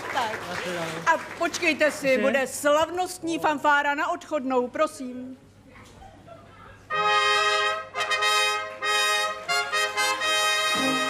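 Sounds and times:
brass band fanfare: 6.9s - 11.0s.

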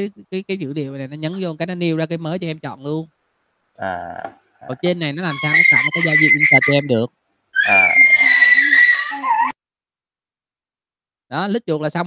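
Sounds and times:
garbled voice over video call: 3.8s - 9.5s.

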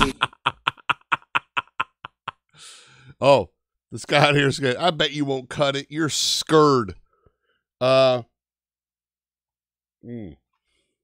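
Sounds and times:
man laughing hard: 0.0s - 2.8s.

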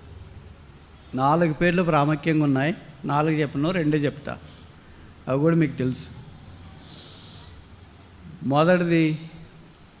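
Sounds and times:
man breathing in: 6.8s - 7.7s.

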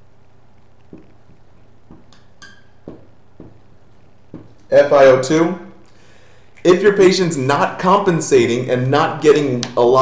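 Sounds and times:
marker writing on whiteboard: 1.9s - 3.7s, 4.3s - 4.7s.

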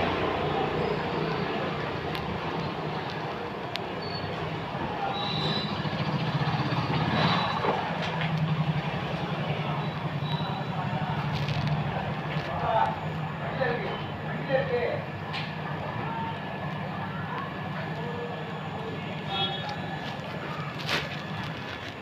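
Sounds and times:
engine humming: 0.0s - 14.4s, 15.0s - 22.0s
street traffic noise: 0.0s - 22.0s.

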